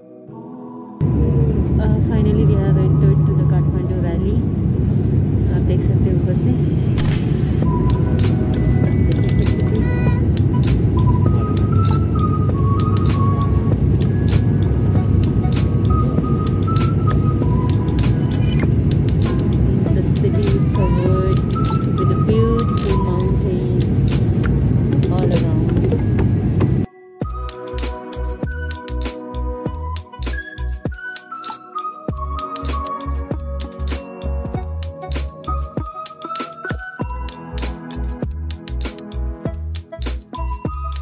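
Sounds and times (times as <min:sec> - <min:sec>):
airliner cabin noise: 0:01.0 - 0:26.9
indistinct voices: 0:19.9 - 0:24.0, 0:25.0 - 0:26.0.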